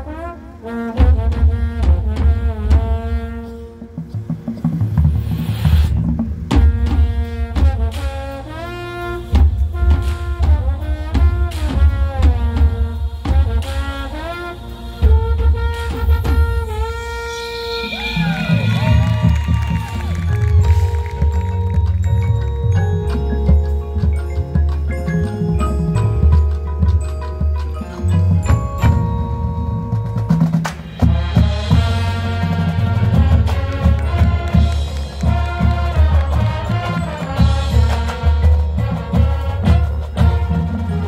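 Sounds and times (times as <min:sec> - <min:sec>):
marching band brass and woodwinds: 0:00.0 - 0:41.0.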